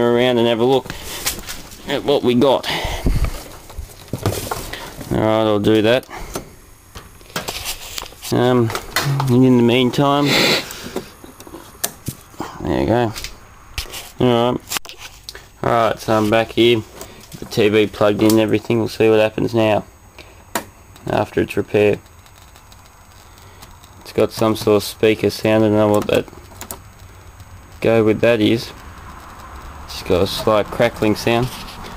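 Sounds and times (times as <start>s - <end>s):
low mains hum: 0.0s - 31.9s
television speaker hiss: 0.0s - 31.9s
slight crackling: 20.0s - 31.9s.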